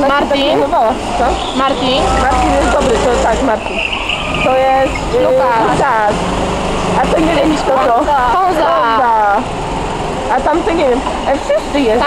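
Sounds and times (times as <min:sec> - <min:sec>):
people talking: 0:00.0 - 0:06.2, 0:06.9 - 0:09.5, 0:10.2 - 0:12.0
go-kart motor passing by: 0:00.4 - 0:12.0.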